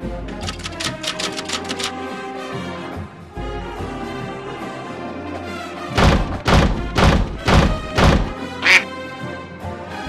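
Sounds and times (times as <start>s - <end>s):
music: 0.0s - 10.0s
heavy thuds: 6.0s - 8.4s
duck quack: 8.6s - 8.9s.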